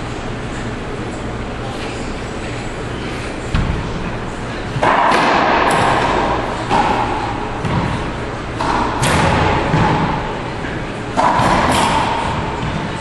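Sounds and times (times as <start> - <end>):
racquetball smacks echoing: 4.8 - 12.9.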